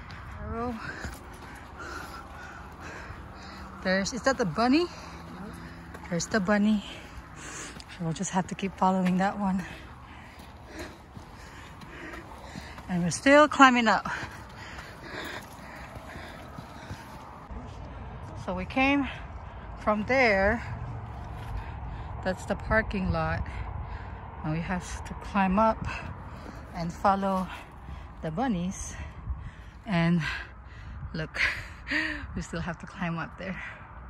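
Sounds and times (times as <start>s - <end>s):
footsteps crunching on dirt: 0.0s - 17.5s
faint outdoor noise: 0.0s - 34.0s
wind rumble: 0.0s - 34.0s
woman speaking: 0.3s - 1.1s, 2.8s - 9.8s, 12.9s - 14.3s, 18.4s - 19.2s, 24.4s - 26.0s, 26.7s - 27.6s.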